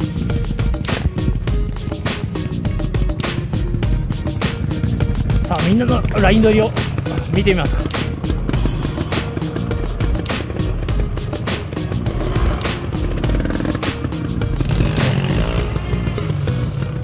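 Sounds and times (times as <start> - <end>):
background music with beat: 0.0 - 17.0
motorcycle engines running: 0.0 - 17.0.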